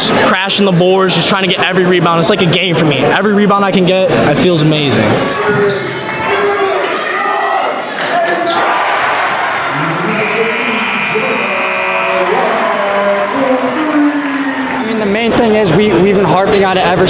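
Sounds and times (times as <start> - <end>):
people shouting: 8.5 - 14.8
high steady tone: 10.1 - 12.5.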